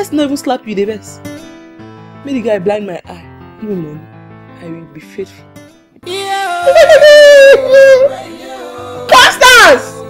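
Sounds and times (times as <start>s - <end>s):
soft background music: 0.0s - 10.0s
woman's long wavering cry: 6.1s - 8.2s.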